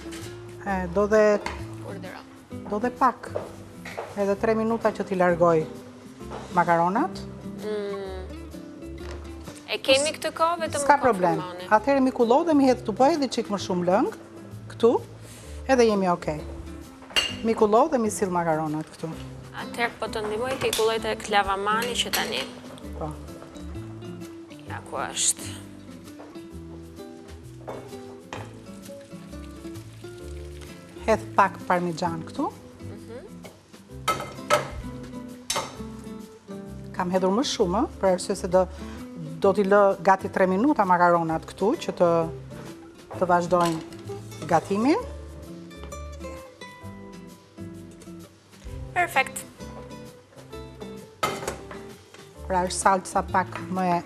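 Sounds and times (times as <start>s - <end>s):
soft background music: 0.0s - 54.0s
sauce sizzling in a pan: 26.6s - 31.4s.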